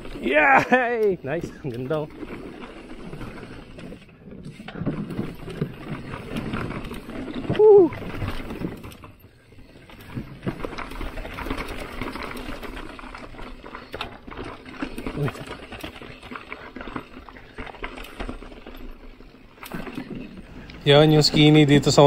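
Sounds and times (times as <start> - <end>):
bike rattling over boards and stones: 0.0 - 22.0
bike tyre rushing: 0.0 - 22.0.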